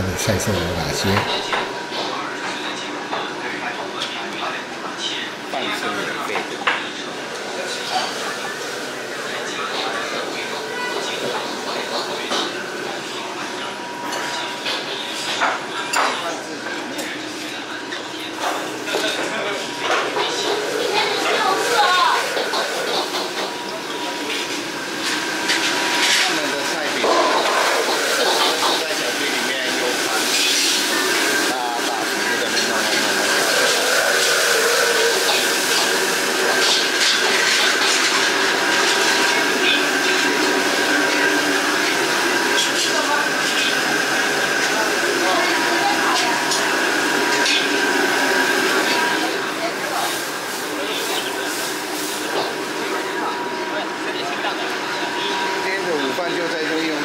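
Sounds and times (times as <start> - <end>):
kitchen background noise: 0.0 - 57.0.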